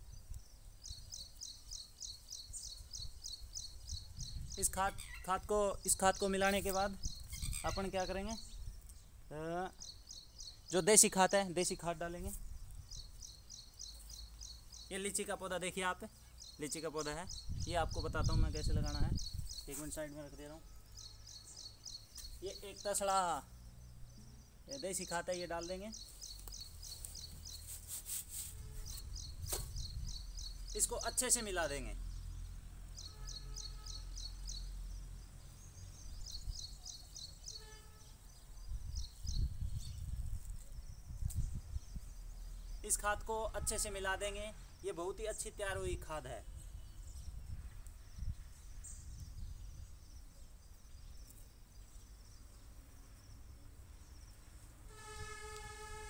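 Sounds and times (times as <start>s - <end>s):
sharp scrape: 26.9s - 29.8s
faint horn held note: 54.9s - 56.0s.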